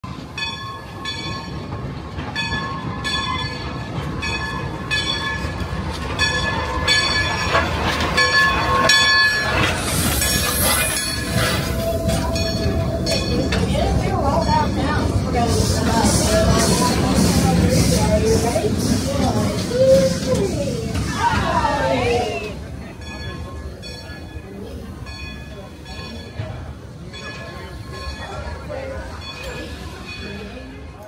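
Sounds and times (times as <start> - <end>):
locomotive bell ringing: 0.1 - 17.2, 21.2 - 31.0
steam hissing: 9.4 - 21.2.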